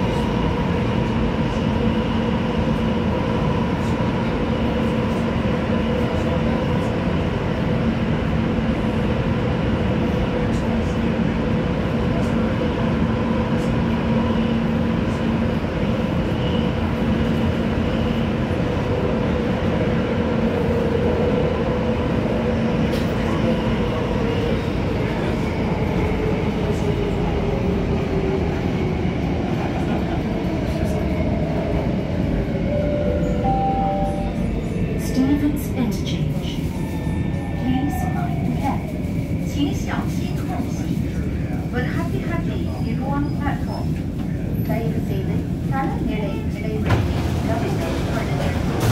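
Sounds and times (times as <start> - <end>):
metro train running noise: 0.0 - 48.9
two-note chime: 32.8 - 34.4.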